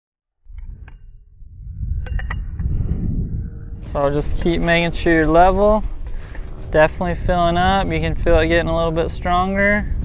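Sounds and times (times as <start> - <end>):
wind rumbling on microphone: 0.4 - 10.0.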